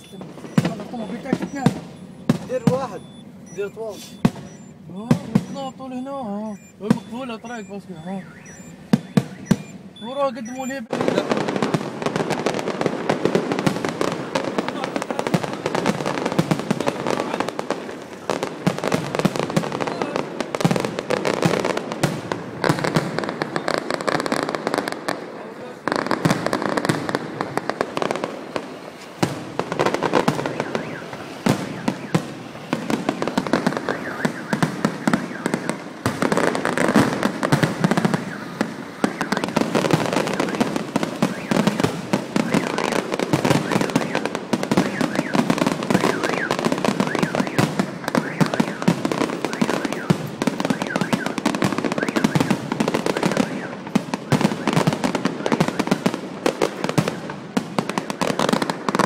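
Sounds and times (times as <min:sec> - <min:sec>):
fireworks crackling and banging: 0:00.0 - 0:59.0.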